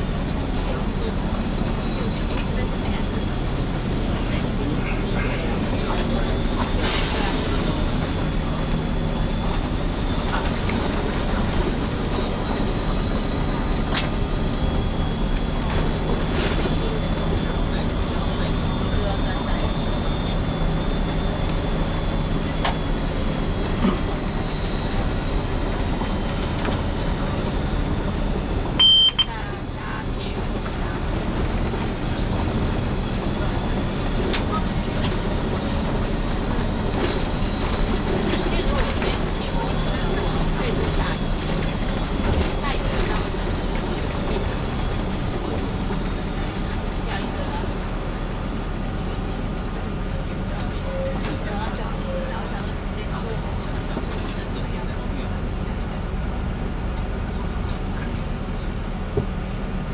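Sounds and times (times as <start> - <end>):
bus engine and road hum: 0.0 - 59.9
high electronic beep: 28.8 - 29.3.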